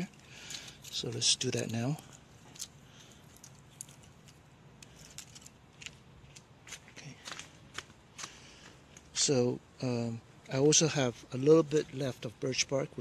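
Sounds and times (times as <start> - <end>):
dry twigs cracking: 0.0 - 9.1.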